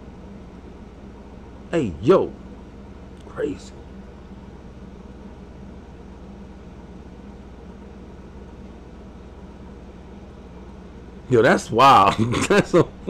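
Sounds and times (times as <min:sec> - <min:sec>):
low hum and hiss of room noise: 0:00.0 - 0:13.0.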